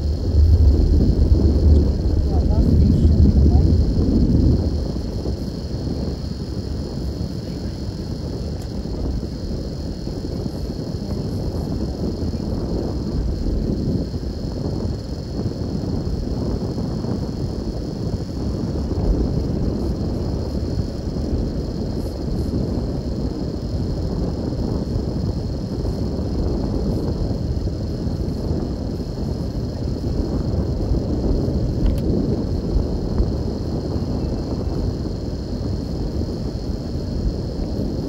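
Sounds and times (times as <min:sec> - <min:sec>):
high hiss: 0:00.0 - 0:38.0
road and engine rumble: 0:00.0 - 0:38.0.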